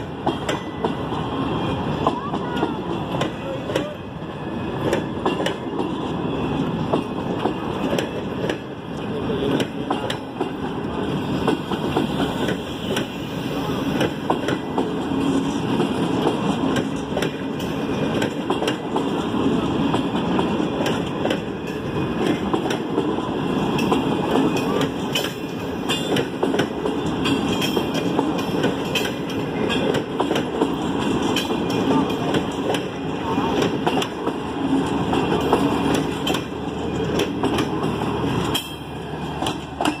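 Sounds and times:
train wheels clattering over rail joints: 0.0s - 40.0s.

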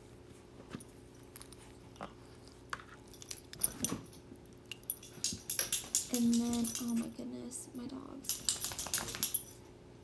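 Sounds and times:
scattered clicks and taps: 4.7s - 7.1s, 8.2s - 9.5s.

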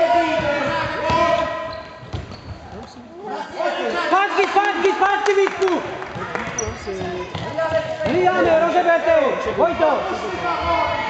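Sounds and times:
ball kicked and bouncing on wood: 2.0s - 2.4s.

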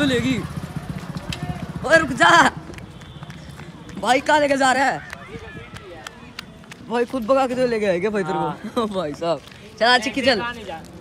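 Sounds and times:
footsteps on dirt road: 0.0s - 11.0s.

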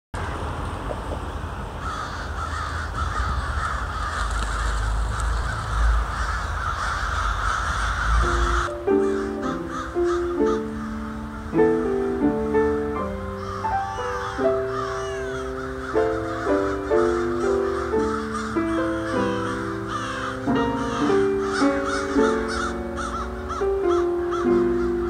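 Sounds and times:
low rumble: 0.2s - 8.6s
crows cawing: 1.8s - 25.0s.

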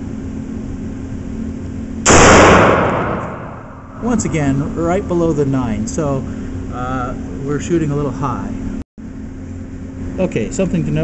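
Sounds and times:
gunshot echoing indoors: 2.0s - 4.0s.

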